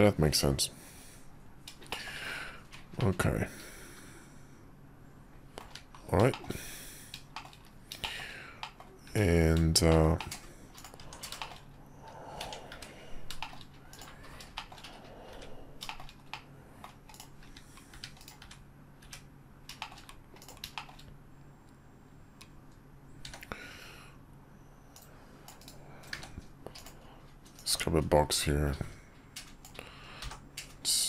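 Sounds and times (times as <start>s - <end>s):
faint low hum: 0.0s - 31.0s
keyboard and mouse clicking: 5.6s - 6.5s, 7.1s - 21.1s, 23.2s - 23.5s, 24.9s - 27.8s, 29.3s - 30.8s.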